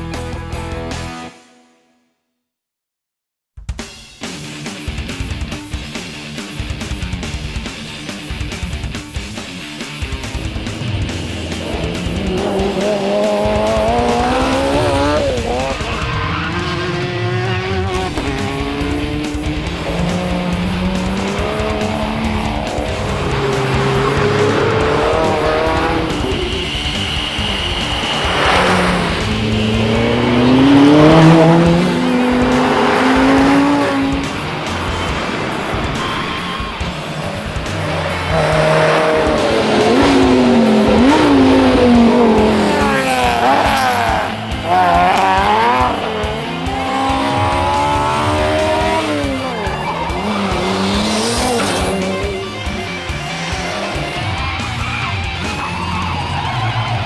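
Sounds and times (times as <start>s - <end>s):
background music: 0.0s - 2.1s, 3.6s - 57.0s
race cars accelerating past: 10.2s - 57.0s
high tyre squeal: 11.0s - 57.0s.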